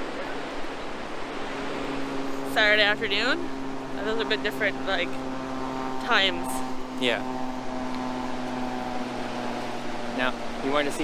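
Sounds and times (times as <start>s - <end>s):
motor-like hum: 0.0s - 11.0s.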